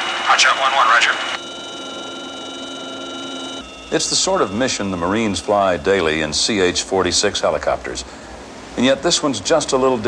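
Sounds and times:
helicopter cockpit drone: 0:00.0 - 0:08.0
high steady whining tones: 0:00.0 - 0:08.6.

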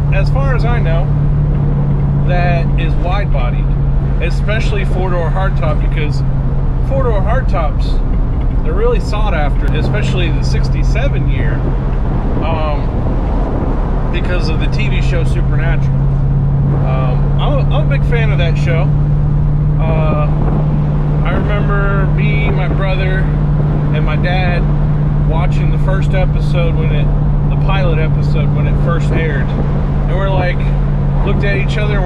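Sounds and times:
man talking: 0:00.0 - 0:01.1, 0:02.2 - 0:06.2, 0:06.9 - 0:08.0, 0:08.6 - 0:11.7, 0:12.4 - 0:12.9, 0:14.2 - 0:16.0, 0:16.7 - 0:19.0, 0:19.8 - 0:20.5, 0:21.2 - 0:32.0
car engine and road noise: 0:00.0 - 0:32.0.

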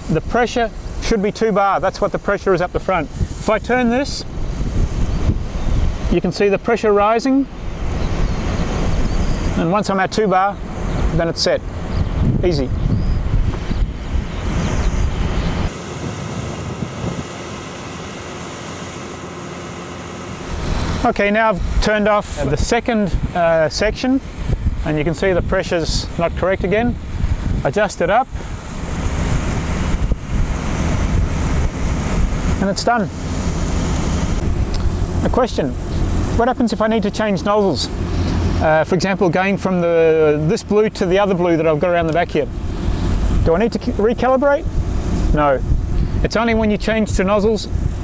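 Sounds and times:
wind buffeting microphone: 0:00.0 - 0:18.2, 0:20.4 - 0:48.0
machinery low rumble: 0:00.0 - 0:48.0
sprayer pump running: 0:00.0 - 0:48.0.

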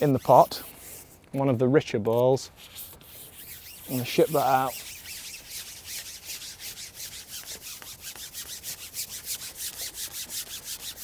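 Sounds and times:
fishing pole sliding and rubbing: 0:00.0 - 0:11.0.

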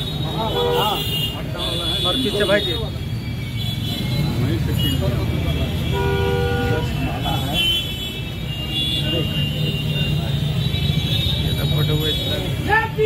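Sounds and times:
crowd chatter: 0:00.0 - 0:13.0
street noise: 0:00.0 - 0:13.0
vehicle horn toot: 0:03.6 - 0:12.4.

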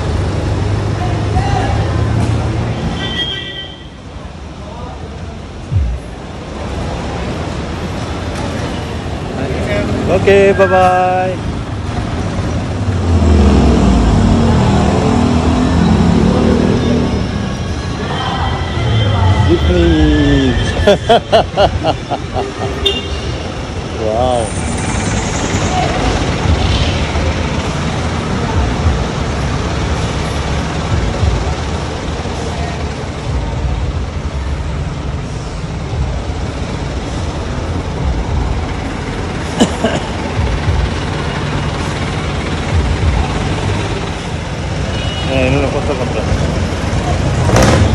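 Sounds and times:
engines idling: 0:04.0 - 0:47.9
motorcycle engine revving: 0:12.7 - 0:17.3, 0:45.4 - 0:47.9
person laughing: 0:20.5 - 0:22.8, 0:39.6 - 0:40.4.

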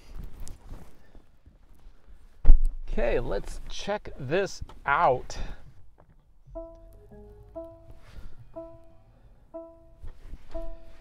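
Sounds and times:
car electronic start-up melody: 0:06.5 - 0:11.0.

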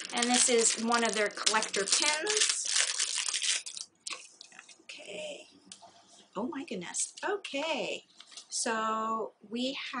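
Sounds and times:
bag crinkling: 0:00.0 - 0:04.6.

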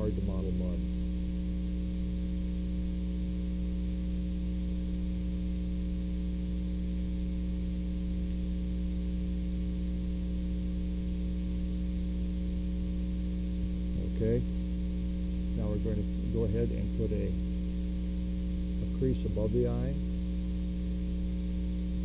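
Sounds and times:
mains hum: 0:00.0 - 0:22.0.

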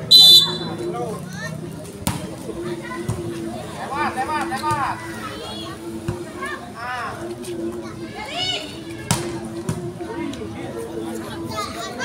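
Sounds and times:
referee's whistle blast: 0:00.0 - 0:00.8.

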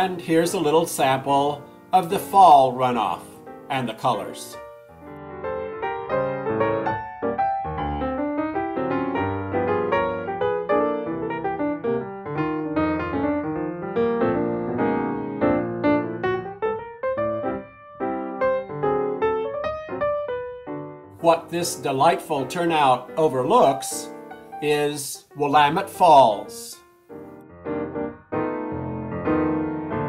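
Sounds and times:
piano music: 0:00.0 - 0:30.0.

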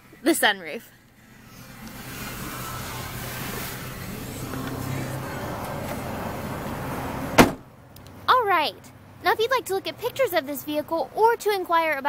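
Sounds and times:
steady noise: 0:00.0 - 0:07.8
car door thud: 0:07.3 - 0:07.7.

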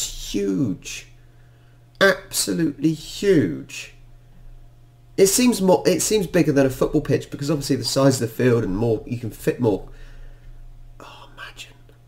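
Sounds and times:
steady low hum: 0:00.0 - 0:12.0
man whispered breathing: 0:11.0 - 0:12.0.

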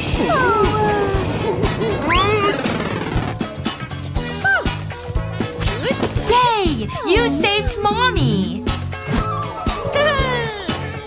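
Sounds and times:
cartoon background music: 0:00.0 - 0:11.0
squeaky sliding sound effects: 0:01.2 - 0:03.4.

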